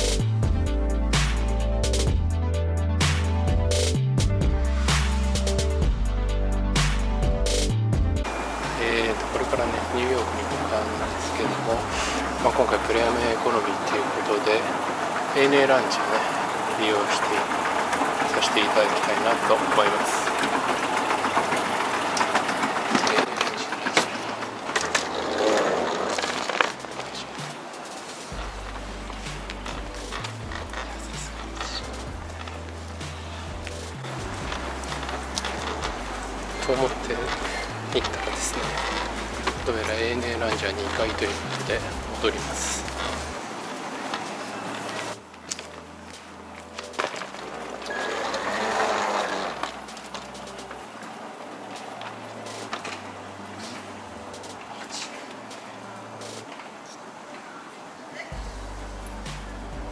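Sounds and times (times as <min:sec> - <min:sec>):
escalator mechanical rumble: 0:00.0 - 0:54.7, 0:58.4 - 0:59.9
moving walkway whirring rattle: 0:07.5 - 0:56.8
low hum: 0:26.3 - 0:43.4, 0:58.3 - 0:59.9.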